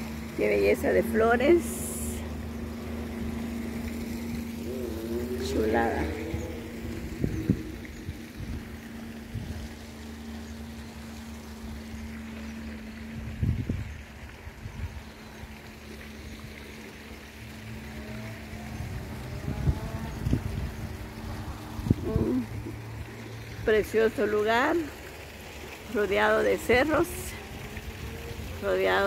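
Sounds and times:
steady low hum: 0.0s - 29.0s
wind buffeting microphone: 2.2s - 12.2s, 12.8s - 15.1s, 18.6s - 24.7s.

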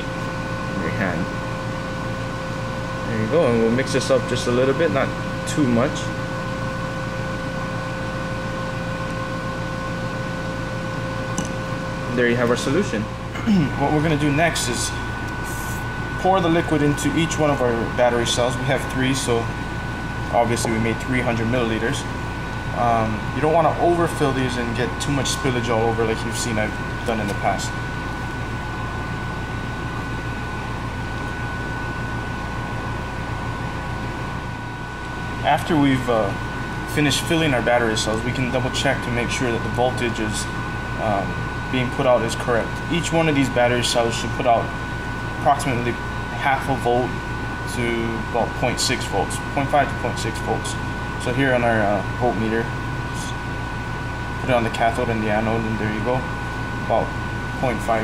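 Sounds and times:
room ventilation hiss and hum: 0.0s - 58.0s.

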